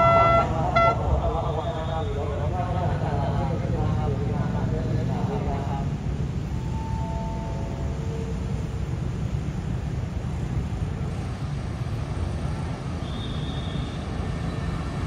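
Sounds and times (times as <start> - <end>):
diesel train rumbling: 0.0 - 15.0.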